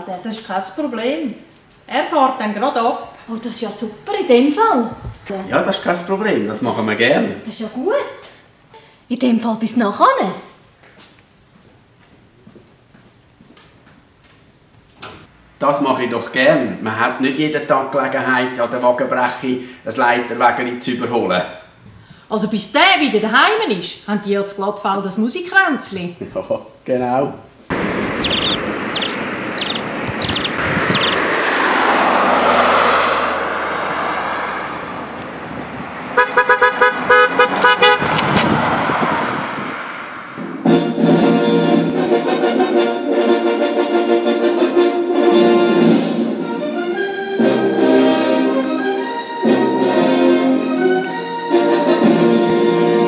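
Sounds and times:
soft footsteps on carpet: 10.8s - 14.4s
traffic passing: 27.7s - 53.0s
car horn short beeps: 36.2s - 38.0s.

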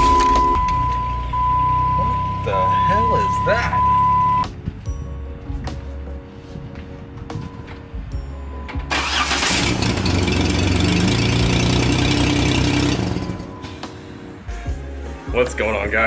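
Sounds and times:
car engine starting and running: 0.0s - 4.5s, 8.5s - 13.9s
background music: 0.0s - 16.0s.

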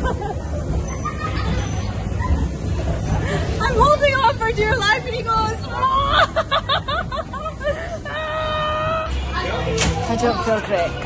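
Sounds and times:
steady low rumble: 0.0s - 11.0s
woman laughing and shrieking: 5.7s - 9.1s.

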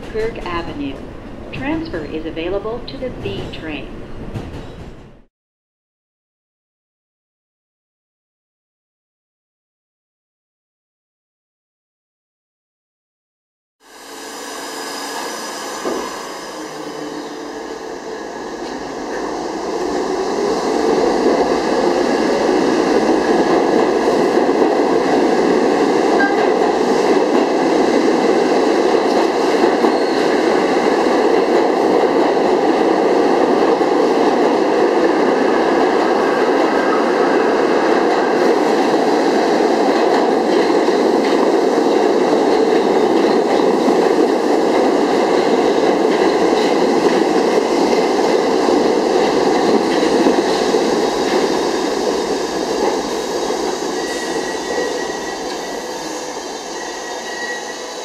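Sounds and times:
subway train rumbling past: 0.0s - 5.3s, 13.8s - 58.0s.

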